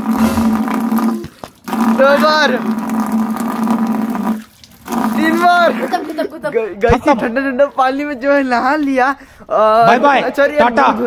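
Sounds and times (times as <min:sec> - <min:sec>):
water running from tap: 0:00.0 - 0:06.1.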